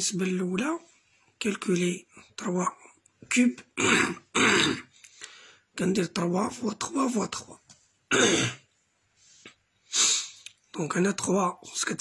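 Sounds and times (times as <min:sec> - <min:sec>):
man clearing his throat: 0:03.8 - 0:04.9, 0:08.1 - 0:08.7.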